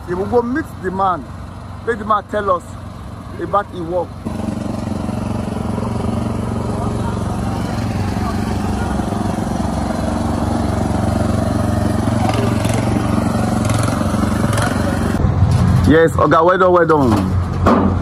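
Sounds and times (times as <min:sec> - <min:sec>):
petrol generator running: 0:00.0 - 0:15.2.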